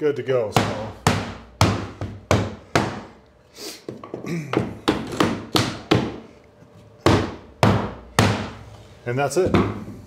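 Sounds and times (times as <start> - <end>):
rubber mallet knocking wood: 0.6 - 3.1, 3.9 - 6.2, 7.0 - 8.6, 9.4 - 9.9.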